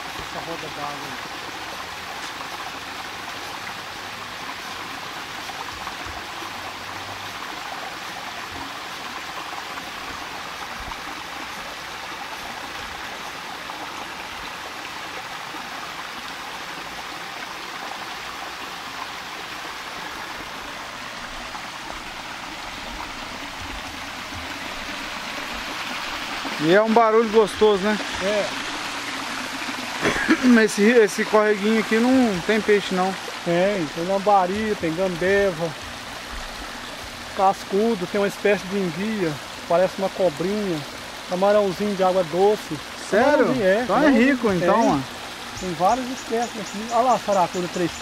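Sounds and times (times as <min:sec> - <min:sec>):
water splashing down spillway: 0:00.0 - 0:48.0.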